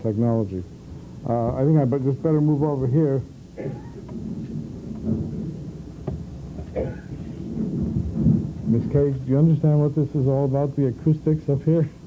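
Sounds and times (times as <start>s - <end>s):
low steady rumbling: 0.0s - 12.0s.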